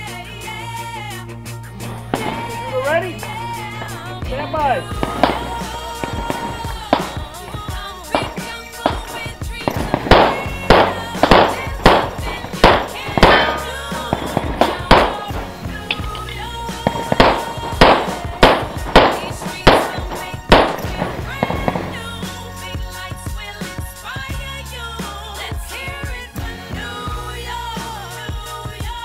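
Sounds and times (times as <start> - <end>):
background music: 0.0 - 29.0
pistol shots: 1.8 - 22.2.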